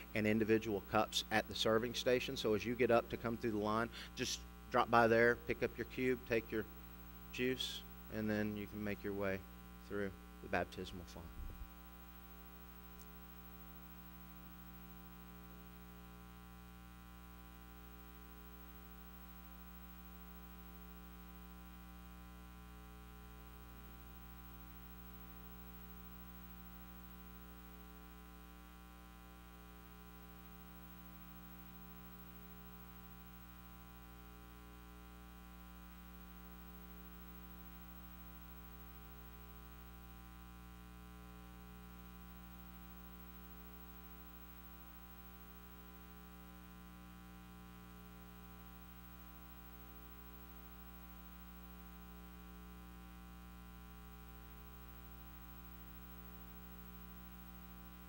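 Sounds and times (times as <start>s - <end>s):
faint electrical mains hum: 0.0s - 58.0s.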